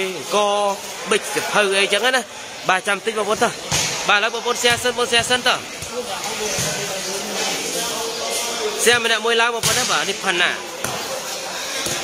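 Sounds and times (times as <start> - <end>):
volleyball thumps: 3.6 - 6.9, 9.6 - 10.1.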